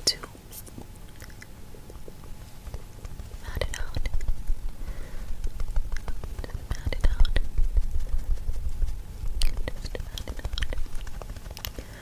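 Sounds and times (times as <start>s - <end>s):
person whispering: 0.0s - 0.4s, 3.4s - 4.2s, 6.4s - 7.5s, 9.4s - 10.8s
mouth clicks: 1.1s - 2.8s.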